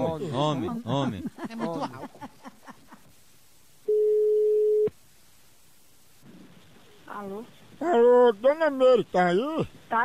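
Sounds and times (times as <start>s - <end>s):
telephone ringback tone: 3.9s - 4.9s.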